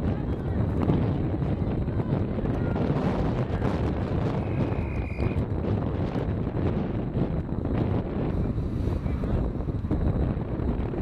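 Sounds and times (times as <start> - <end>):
wind buffeting microphone: 0.0 - 11.0
referee whistle blast: 4.4 - 5.4.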